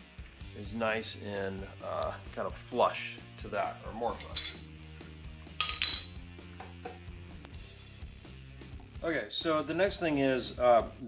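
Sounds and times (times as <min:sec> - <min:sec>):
soft background music: 0:00.0 - 0:11.0
metallic clink ringing: 0:04.2 - 0:04.7, 0:05.6 - 0:06.2.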